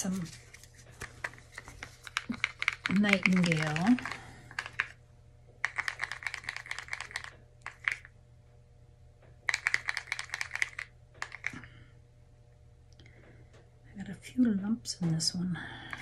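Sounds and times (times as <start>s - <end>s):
stir stick clicking against cup: 2.0s - 4.9s, 5.6s - 8.1s.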